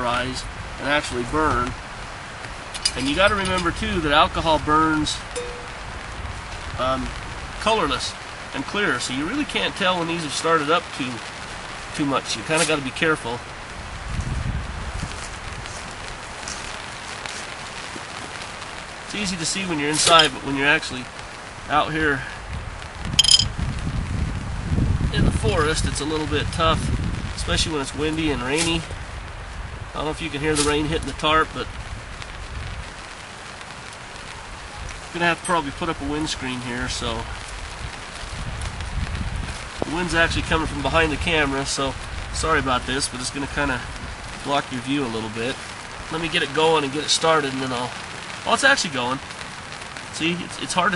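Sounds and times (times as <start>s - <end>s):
wind rumble on microphone: 0.0s - 19.8s, 20.4s - 46.6s
light rain on a tarp: 0.0s - 50.9s.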